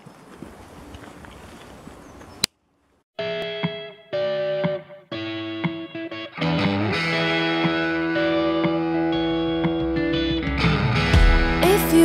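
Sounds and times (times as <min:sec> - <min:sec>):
outdoor background noise: 0:00.0 - 0:05.1
pop song with guitar chords: 0:03.2 - 0:12.0.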